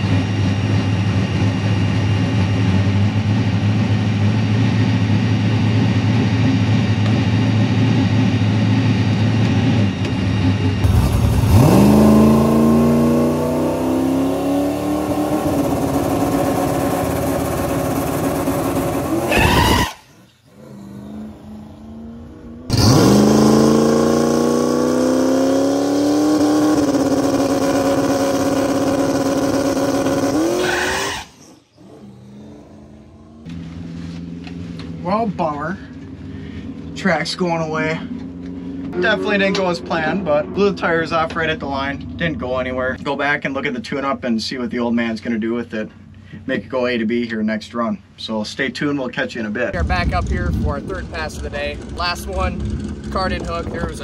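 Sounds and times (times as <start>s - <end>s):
drag car engine revving: 0.0s - 43.1s, 49.8s - 54.0s.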